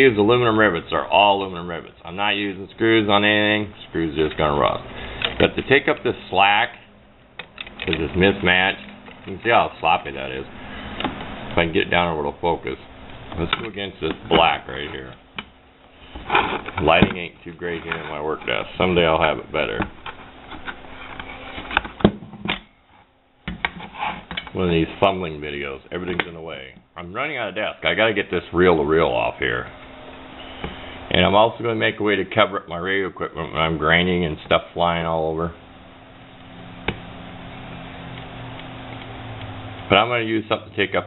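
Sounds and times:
steady low hum: 0:00.0 - 0:41.0
metal tubing rustling: 0:12.8 - 0:22.0.

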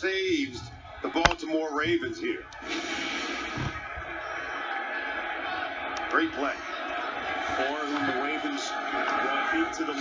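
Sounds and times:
stadium crowd noise through tv speaker: 0:00.0 - 0:10.0.

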